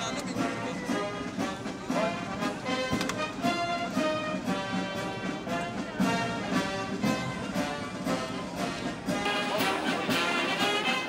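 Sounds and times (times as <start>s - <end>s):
military brass band playing: 0.0s - 11.0s.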